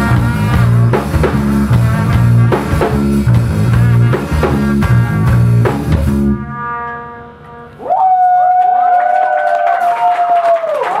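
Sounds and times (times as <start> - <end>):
audience cheering: 7.8 - 11.0
person shouting woo: 7.8 - 11.0.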